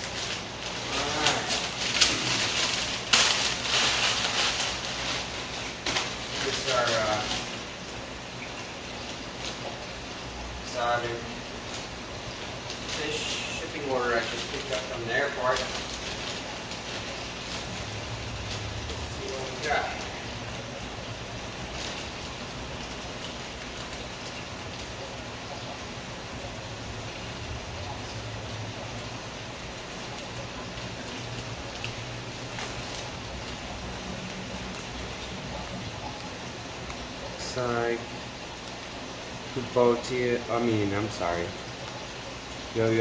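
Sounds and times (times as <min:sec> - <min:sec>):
plastic bag crinkling: 0:00.0 - 0:07.7, 0:12.6 - 0:25.0, 0:30.2 - 0:35.3
aquarium water rushing: 0:00.0 - 0:43.0
man talking: 0:00.8 - 0:01.6, 0:06.4 - 0:07.5, 0:10.6 - 0:11.4, 0:12.9 - 0:15.8, 0:19.1 - 0:20.3, 0:37.4 - 0:38.1, 0:39.5 - 0:41.6, 0:42.7 - 0:43.0.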